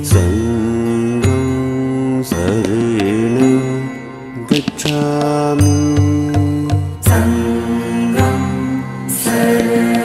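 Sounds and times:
chanted mantra: 0:04.9 - 0:10.0.

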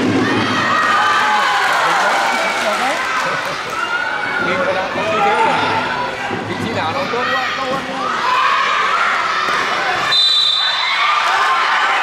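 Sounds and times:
children shouting and cheering: 0:00.0 - 0:06.4, 0:07.1 - 0:10.1.

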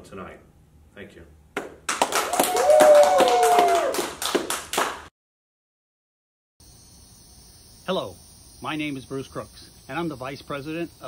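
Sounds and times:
man clapping hands: 0:01.6 - 0:05.1.

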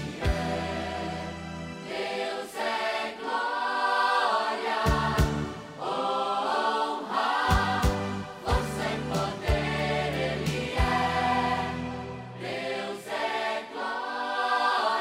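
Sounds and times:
bass notes: 0:00.0 - 0:01.8, 0:04.9 - 0:05.6, 0:07.5 - 0:12.4
voices singing: 0:00.0 - 0:15.0.

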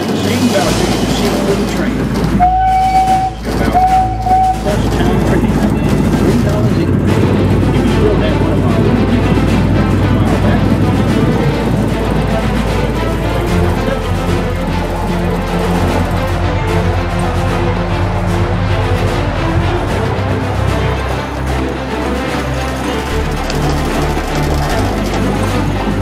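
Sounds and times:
ride music: 0:00.0 - 0:26.0
ride running noise: 0:00.0 - 0:26.0
miniature train whistle: 0:02.4 - 0:04.9.

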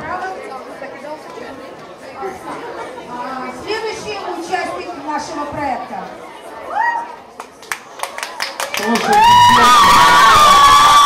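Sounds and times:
room chatter: 0:00.0 - 0:11.0.

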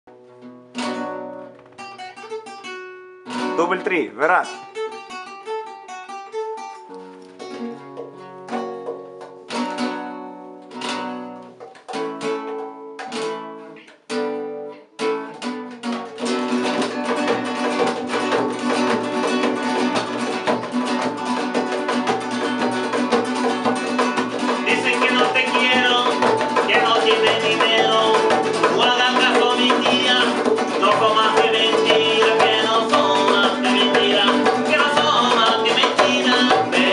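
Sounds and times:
nylon-string guitars playing rumba: 0:00.1 - 0:36.9
hand drum: 0:07.3 - 0:14.4, 0:15.0 - 0:36.9.

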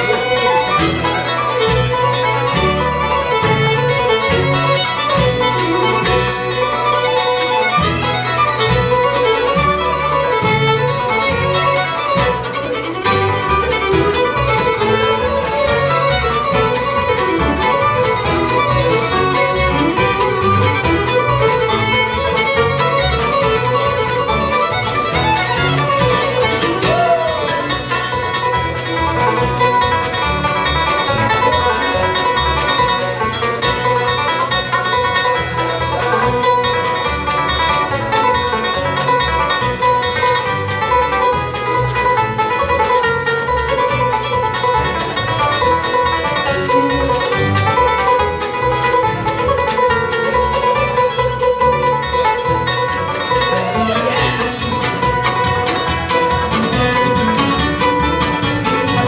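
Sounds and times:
bluegrass band playing: 0:00.0 - 0:59.0.

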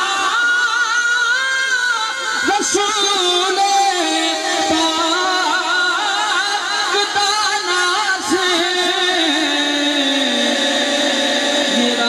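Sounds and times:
man singing into microphone: 0:00.0 - 0:12.0.

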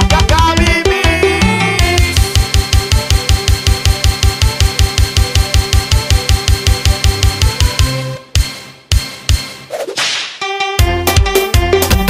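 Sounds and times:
bass-heavy beat: 0:00.0 - 0:08.1
dance music track: 0:00.0 - 0:09.6
whip-crack swoosh: 0:09.7 - 0:10.4.

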